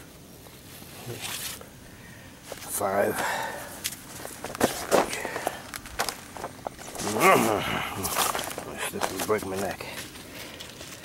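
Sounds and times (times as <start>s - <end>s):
footsteps on plastic sheeting: 3.9s - 7.3s, 7.9s - 11.0s.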